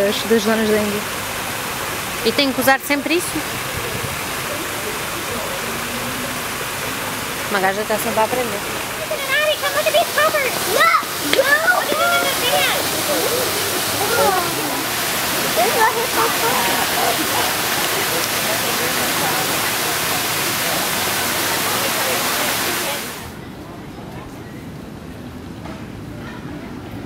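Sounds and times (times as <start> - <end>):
running water rushing: 0.0 - 23.4
high-pitched voices: 8.9 - 17.8.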